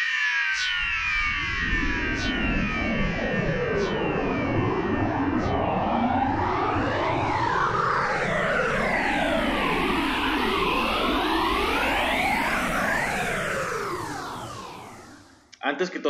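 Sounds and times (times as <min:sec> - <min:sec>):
synthesized tones sliding up and down: 0:00.8 - 0:15.2.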